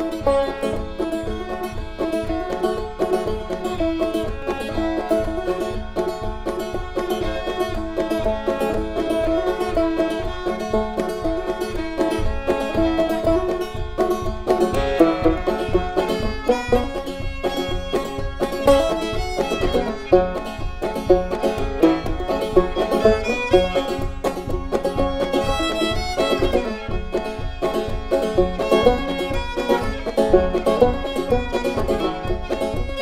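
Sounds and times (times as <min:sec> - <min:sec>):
banjo picking: 0:00.0 - 0:33.0
bluegrass string band music: 0:00.0 - 0:33.0.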